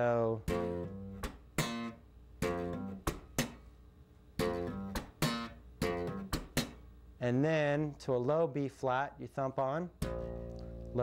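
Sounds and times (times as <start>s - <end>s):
electric bass slap funk: 4.4s - 6.8s, 10.0s - 11.0s.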